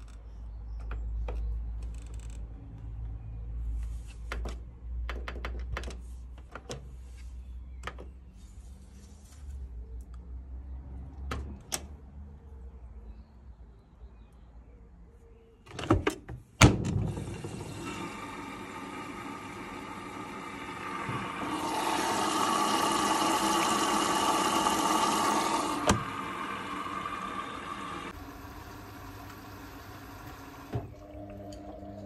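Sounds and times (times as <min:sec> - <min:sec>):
water rushing into washing machine: 0:17.0 - 0:32.0.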